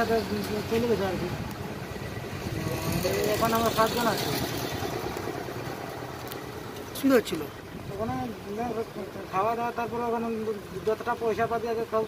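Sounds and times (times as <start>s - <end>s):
vehicle engine rumbling: 0.0s - 12.0s
man talking: 6.9s - 12.0s.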